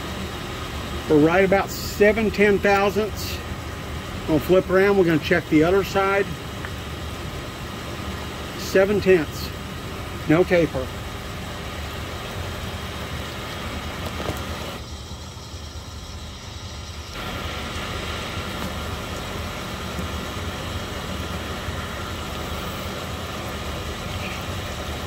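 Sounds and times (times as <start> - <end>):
machine shop machinery hum: 0.0 - 25.0.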